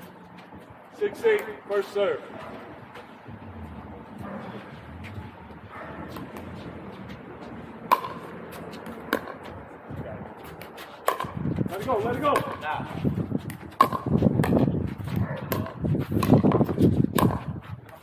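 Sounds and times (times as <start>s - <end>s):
men's voices: 0.9s - 7.8s, 9.5s - 13.3s
paddles striking plastic ball: 13.4s - 14.6s.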